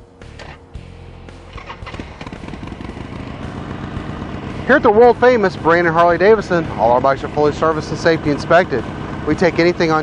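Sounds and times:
motorcycle engine starting and idling: 0.2s - 10.0s.

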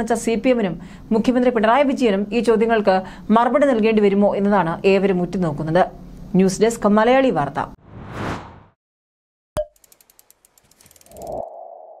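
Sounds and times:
rapid ticks: 9.7s - 11.4s.

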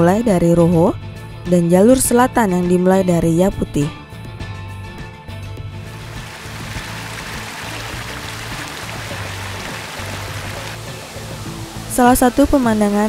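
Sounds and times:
background music: 0.0s - 13.0s
waterfall rushing: 5.9s - 13.0s.

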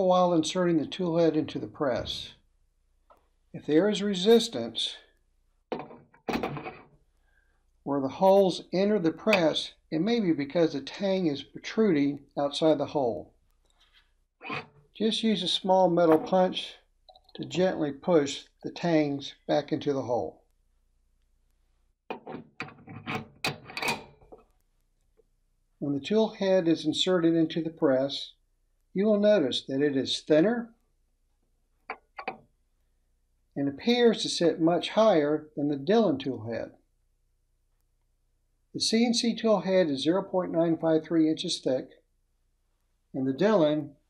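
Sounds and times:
metal scraping and clicking: 14.4s - 14.8s, 22.1s - 24.5s.

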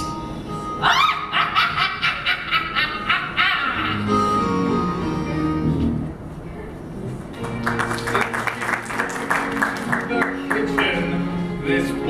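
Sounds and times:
person cackling: 0.8s - 4.4s.

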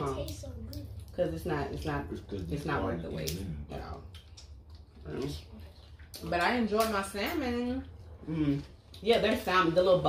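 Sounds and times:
mouth smacks while chewing: 4.0s - 6.2s.

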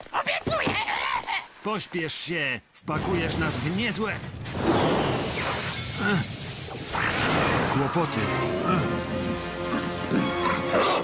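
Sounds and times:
cartoon shattering rush: 4.5s - 7.8s.

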